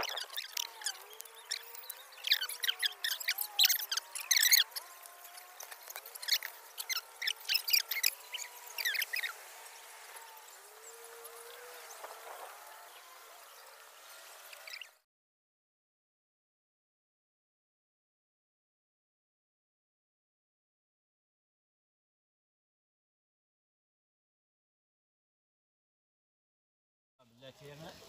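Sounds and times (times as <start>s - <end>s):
small birds chirping: 0.0s - 15.0s
faint outdoor background: 0.0s - 15.1s, 27.2s - 28.0s.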